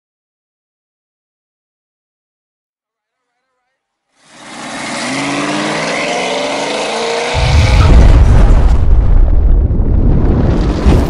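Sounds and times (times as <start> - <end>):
car engine revving: 4.2 - 8.2.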